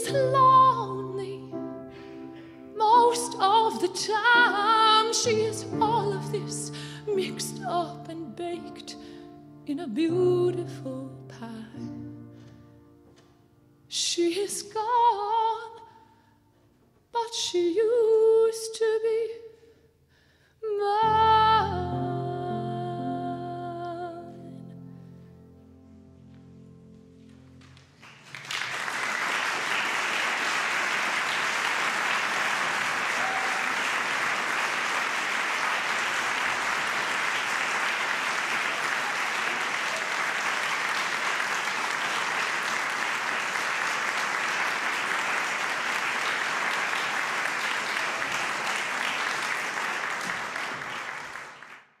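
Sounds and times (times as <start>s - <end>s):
audience applauding: 27.6s - 52.0s.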